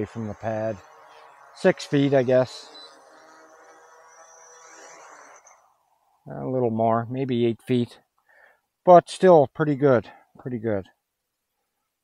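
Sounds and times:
drone propellers whirring: 0.0s - 5.9s.

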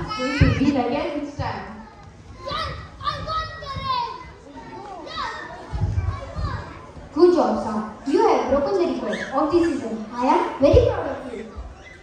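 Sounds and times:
boys shouting excitedly: 0.0s - 0.8s, 2.3s - 6.8s.

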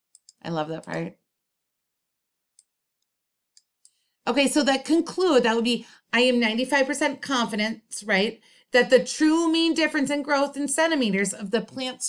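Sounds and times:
computer mouse click: 0.1s - 1.1s
person speaking: 0.4s - 1.1s.

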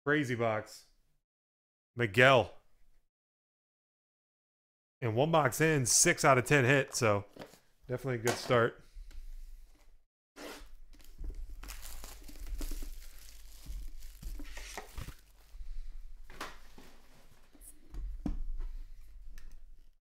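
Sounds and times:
knife slitting plastic wrap: 10.4s - 15.4s
plastic wrap tearing and crinkling: 10.6s - 15.5s.

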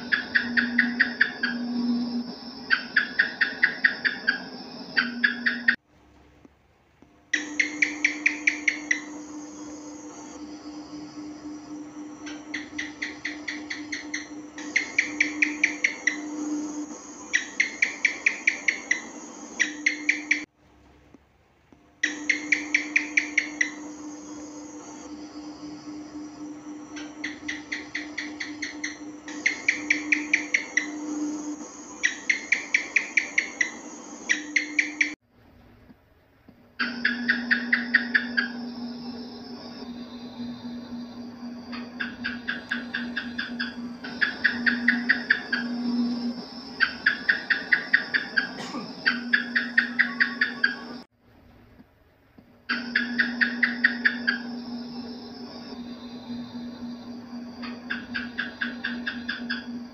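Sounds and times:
gecko chirping: 0.0s - 5.8s, 7.3s - 20.5s, 22.0s - 35.2s, 36.8s - 51.1s, 52.7s - 59.9s
steady low hum: 0.0s - 59.9s.

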